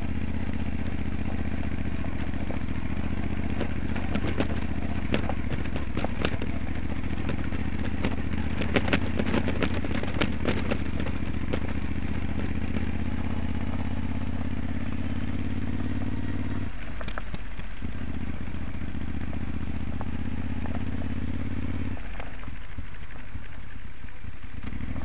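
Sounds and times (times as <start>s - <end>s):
motorcycle engine running: 0.0s - 25.0s
loose stones clattering: 1.3s - 12.9s.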